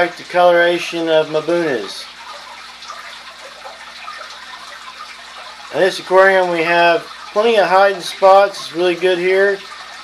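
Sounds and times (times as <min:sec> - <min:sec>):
aquarium water splashing: 0:00.0 - 0:10.0
faint steady hum: 0:00.0 - 0:10.0.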